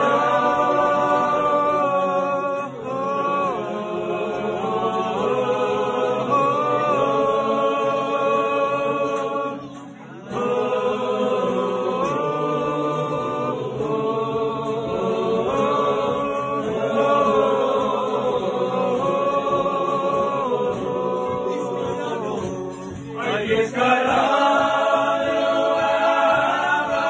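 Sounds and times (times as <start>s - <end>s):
acoustic guitar: 0.0s - 27.0s
men singing together: 0.0s - 27.0s.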